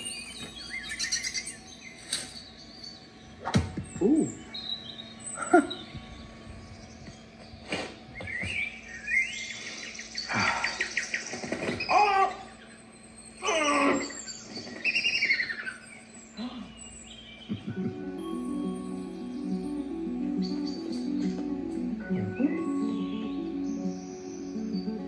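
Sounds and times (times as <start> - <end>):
bird chirps: 0.0 - 25.0
squeaky pitch-sliding calls: 13.4 - 15.8.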